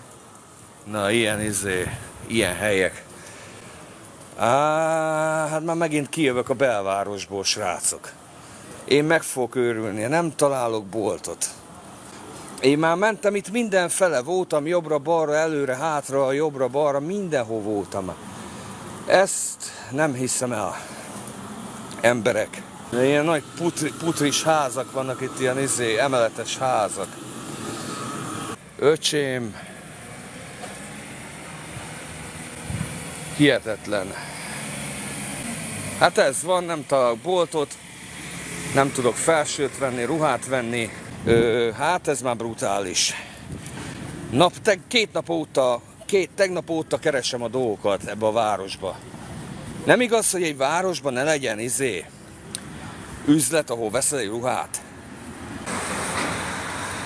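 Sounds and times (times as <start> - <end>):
distant traffic rumble: 0.0 - 57.0.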